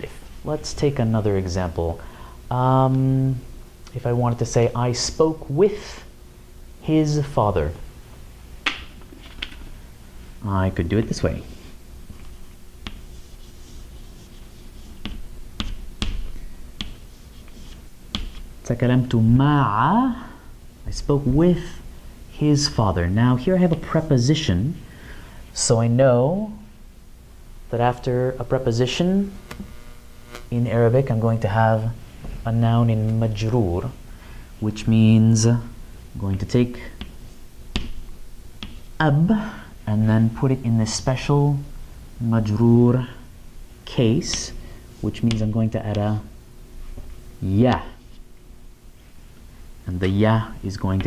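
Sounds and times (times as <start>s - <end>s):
chalk scraping: 11.5s - 15.8s, 16.8s - 18.5s
chalk tapping on chalkboard: 12.8s - 18.4s, 37.0s - 38.9s.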